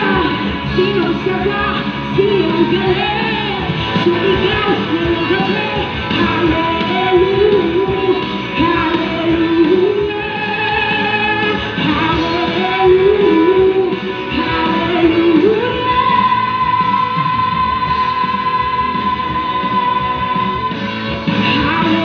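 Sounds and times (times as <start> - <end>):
electric guitar: 0.0 - 22.0
live rock band playing: 0.0 - 22.0
person singing: 0.0 - 22.0.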